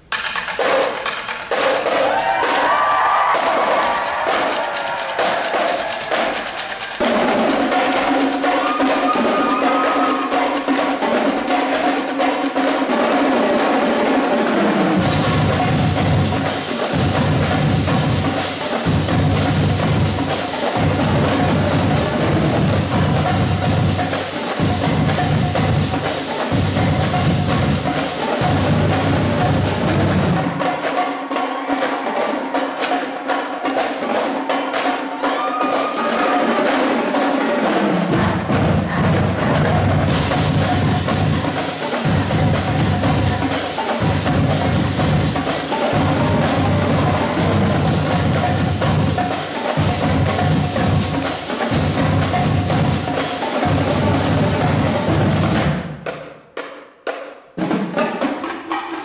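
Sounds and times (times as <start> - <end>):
cymbals: 0.0 - 59.0
snare drums: 0.0 - 59.0
tenor drums: 0.0 - 59.0
bass drums pounding: 15.0 - 30.6, 38.1 - 56.0.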